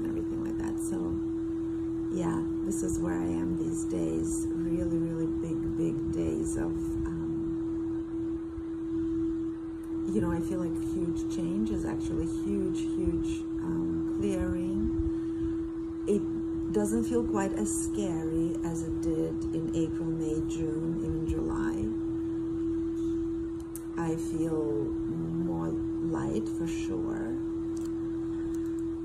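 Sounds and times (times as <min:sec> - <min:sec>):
steady pure tone: 0:00.0 - 0:29.0.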